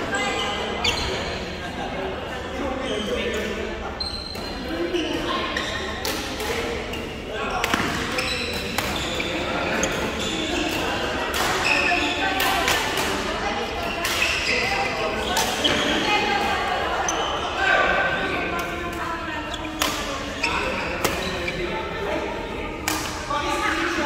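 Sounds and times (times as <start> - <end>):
people chattering: 0.0 - 24.0.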